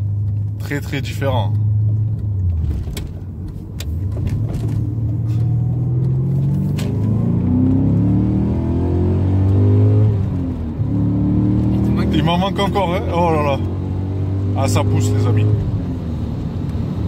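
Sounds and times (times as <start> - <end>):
car engine accelerating hard: 0.0 - 17.0.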